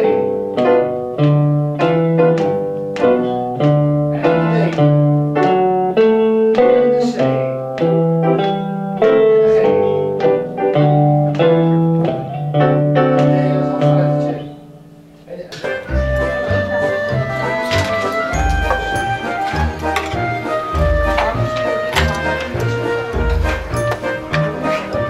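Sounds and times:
guitars playing chords: 0.0 - 25.0
low bass line: 15.9 - 25.0.

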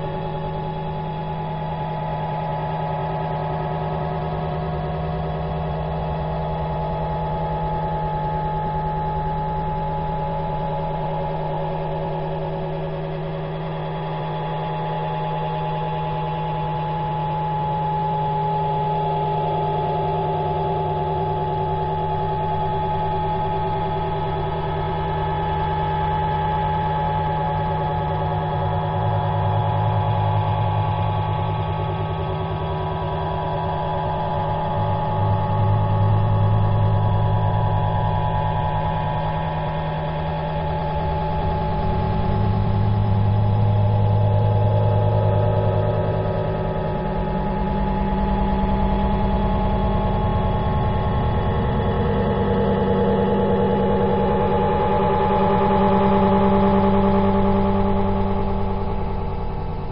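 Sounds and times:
drone of low tones: 0.0 - 59.9.

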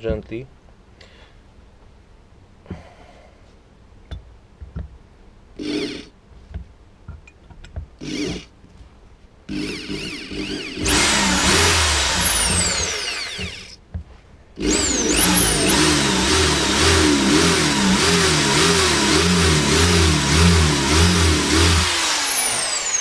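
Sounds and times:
electric drill boring into stone: 9.5 - 13.8, 14.6 - 23.0.

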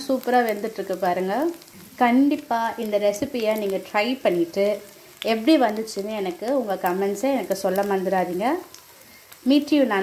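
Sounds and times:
woman talking: 0.0 - 8.7, 9.4 - 10.0
meat sizzling in oil: 0.0 - 10.0.

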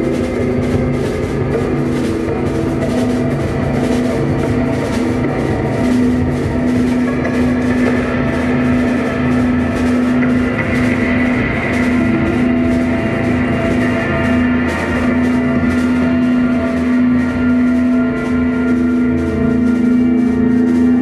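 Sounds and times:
psychedelic rock band playing: 0.0 - 21.0
steady drum beat: 0.0 - 21.0.

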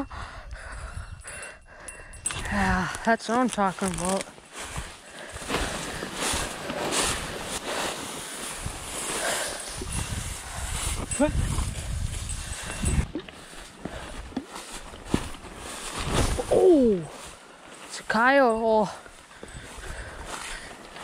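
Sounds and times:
dry grass rustling underfoot: 2.4 - 21.0.

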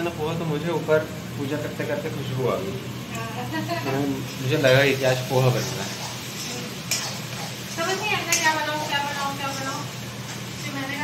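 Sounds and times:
food sizzling in a pan: 0.0 - 11.0.

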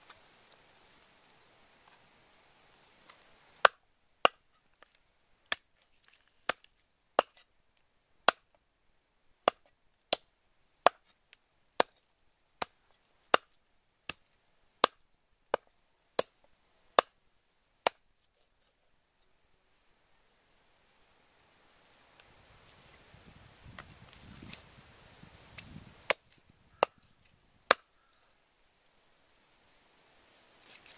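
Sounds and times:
cleaver chopping on wooden block: 10.8 - 11.1, 27.7 - 27.9.

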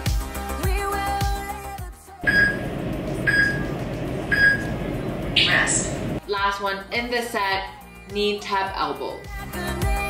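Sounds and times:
background pop music: 0.0 - 10.0
short electronic beeps: 2.3 - 3.7, 4.3 - 4.7.

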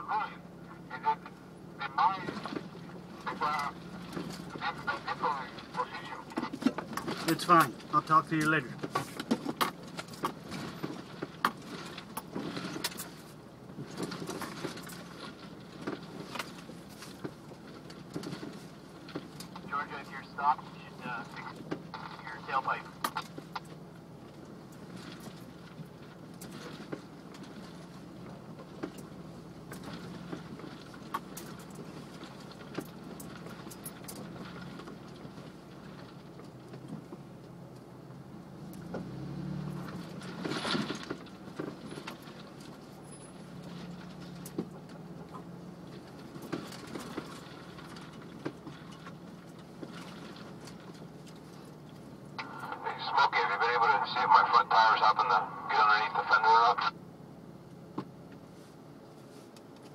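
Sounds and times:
engine running at low speed: 0.0 - 59.9.

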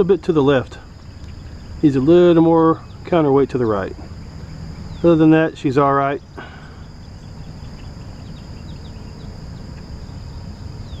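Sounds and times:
high insect trill: 0.0 - 11.0
low uneven rumble: 0.0 - 11.0.

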